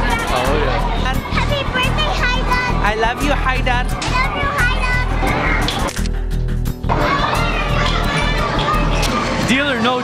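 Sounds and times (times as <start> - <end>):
children chattering: 0.0 - 5.8, 6.9 - 10.0
loud background music: 0.0 - 10.0
young child's voice: 1.2 - 2.8, 4.0 - 5.7, 6.9 - 9.3.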